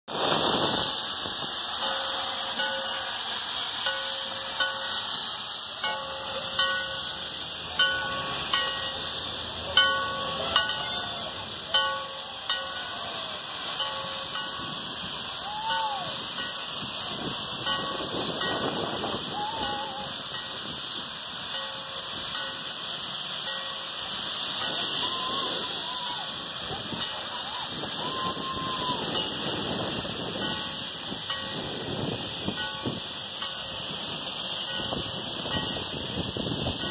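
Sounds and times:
steam locomotive hissing: 0:00.1 - 0:36.9.

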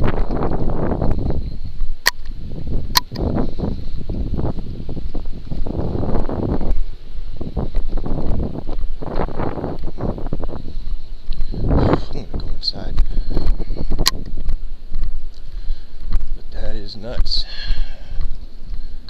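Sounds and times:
microphone handling rumble: 0:00.0 - 0:19.0
wind noise: 0:00.0 - 0:19.0.

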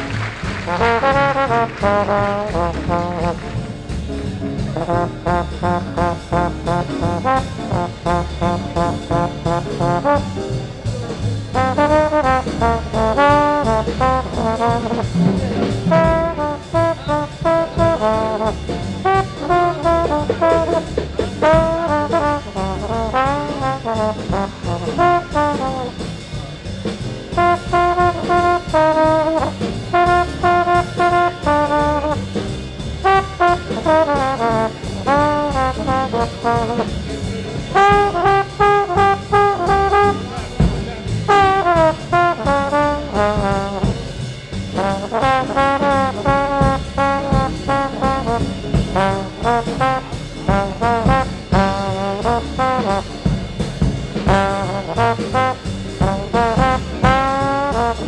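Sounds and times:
bass and drums: 0:00.0 - 0:58.0
horn solo with sliding notes: 0:00.2 - 0:03.7, 0:11.6 - 0:26.0, 0:27.3 - 0:32.3, 0:37.8 - 0:40.7, 0:41.3 - 0:44.0.

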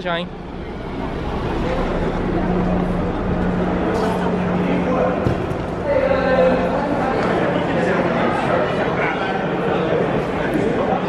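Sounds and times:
steady low hum: 0:00.0 - 0:10.8
murmur of voices: 0:00.0 - 0:11.0.

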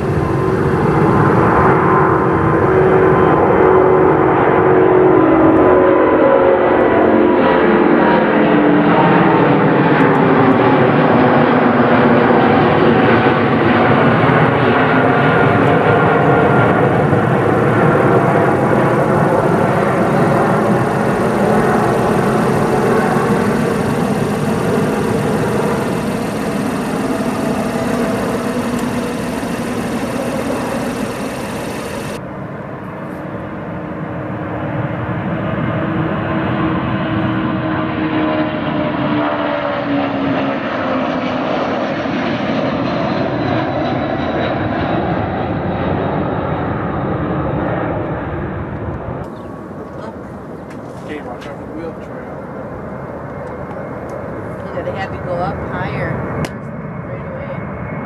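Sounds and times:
jet airliner passing: 0:00.0 - 0:58.0
jet engines at takeoff: 0:00.0 - 0:58.0.

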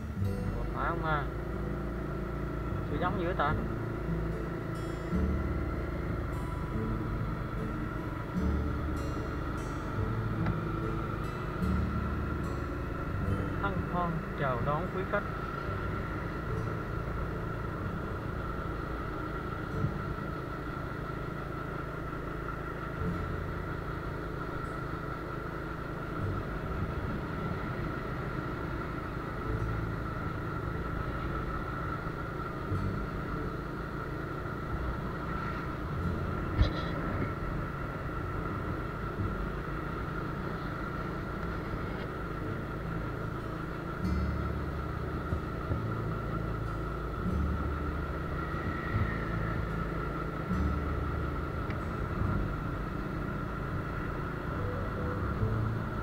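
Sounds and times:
motor scooter engine running: 0:00.0 - 0:56.0
steady high whine: 0:00.0 - 0:56.0.

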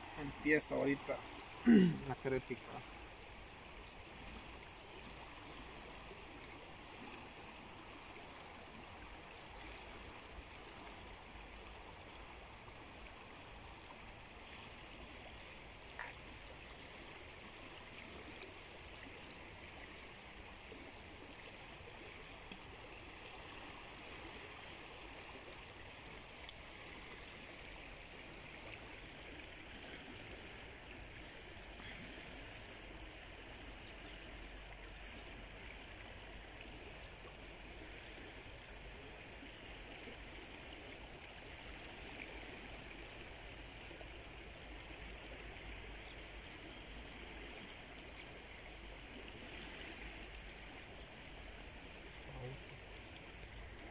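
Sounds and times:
river current flowing: 0:00.0 - 0:53.9
faint clicks: 0:26.3 - 0:26.6, 0:53.4 - 0:53.6.

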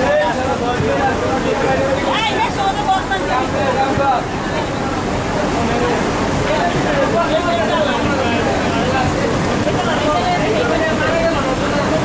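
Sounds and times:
steady noisy din: 0:00.0 - 0:12.0.

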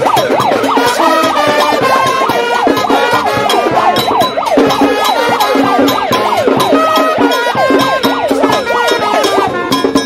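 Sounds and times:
brass band playing with drums: 0:00.0 - 0:10.0
warbling siren-like tone: 0:00.0 - 0:10.0.

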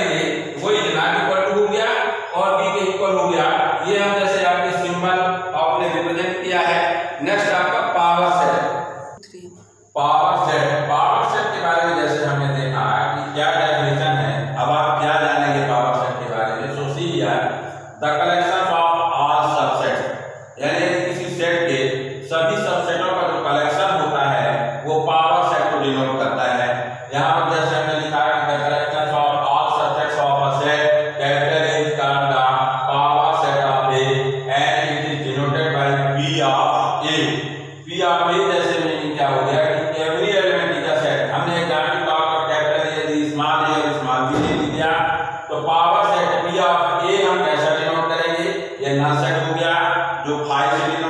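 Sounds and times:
man lecturing: 0:00.0 - 0:08.8, 0:10.0 - 0:51.0
man speaking: 0:00.0 - 0:08.8, 0:10.0 - 0:20.0, 0:20.6 - 0:51.0
steady low hum: 0:00.0 - 0:51.0.

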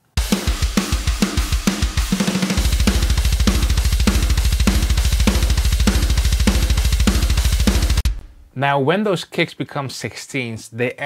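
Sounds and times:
cymbals: 0:00.2 - 0:08.5
fast kick drums: 0:00.2 - 0:08.5
snare hits: 0:00.3 - 0:08.5.

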